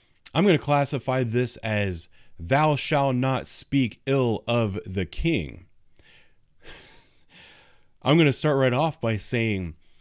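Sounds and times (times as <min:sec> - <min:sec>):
man breathing quietly: 0:02.1 - 0:02.4, 0:05.9 - 0:08.0, 0:09.8 - 0:10.0.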